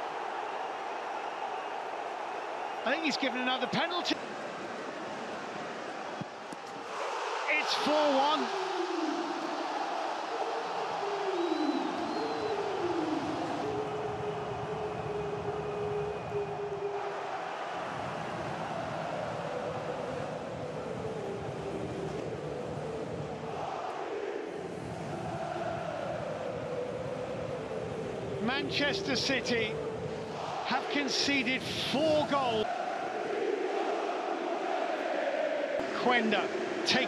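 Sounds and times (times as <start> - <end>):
stadium crowd cheering and chanting: 0.0 - 37.0.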